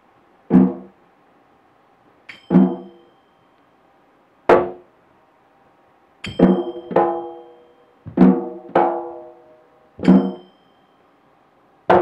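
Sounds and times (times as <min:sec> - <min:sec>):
drum stroke ringing: 0:02.3 - 0:03.3, 0:06.2 - 0:09.0, 0:10.0 - 0:10.9.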